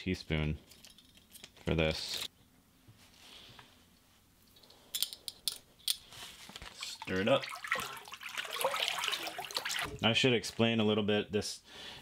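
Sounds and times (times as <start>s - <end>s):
milk sloshing in a bucket: 6.6s - 10.0s.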